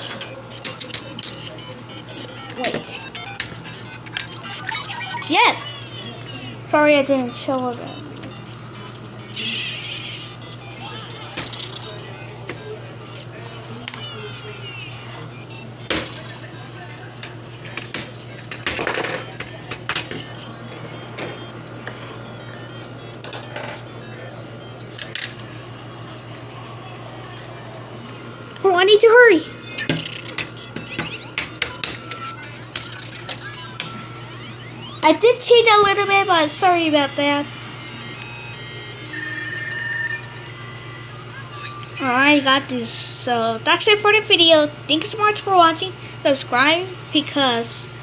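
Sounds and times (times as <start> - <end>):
toy speaker music and effects: 0.0 - 26.2, 28.8 - 42.2.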